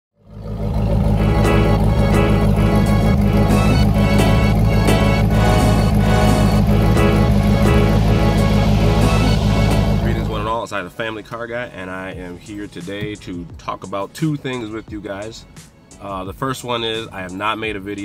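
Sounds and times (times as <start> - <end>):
car exhaust running: 0.2 - 11.0
music with a steady beat: 1.2 - 10.5, 12.2 - 18.0.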